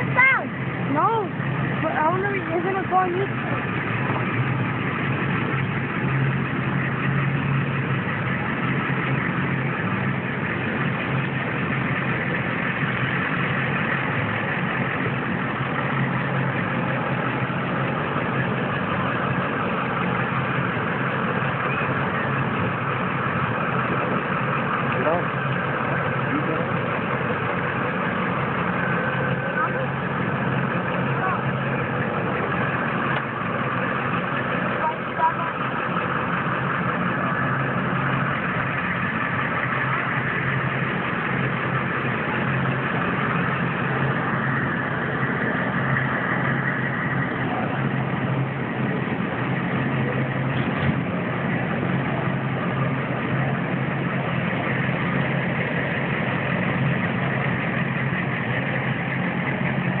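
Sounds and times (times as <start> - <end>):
low engine hum: 0.0 - 60.0.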